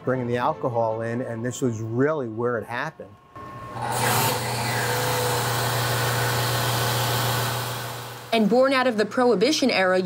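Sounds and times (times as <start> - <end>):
bottle filler humming: 3.3 - 9.0.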